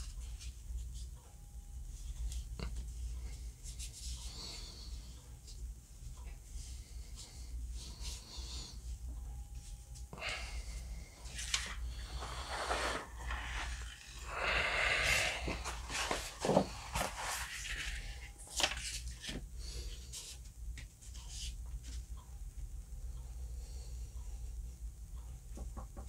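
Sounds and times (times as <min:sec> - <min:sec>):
hands smoothing paper: 0:11.4 - 0:14.2, 0:15.0 - 0:19.0.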